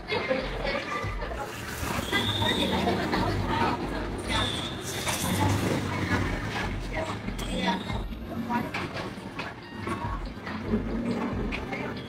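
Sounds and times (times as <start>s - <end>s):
indistinct background chatter: 0.0s - 12.0s.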